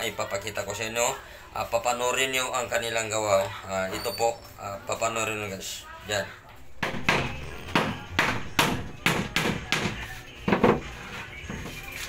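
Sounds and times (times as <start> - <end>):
hammer striking plywood: 6.8 - 10.8.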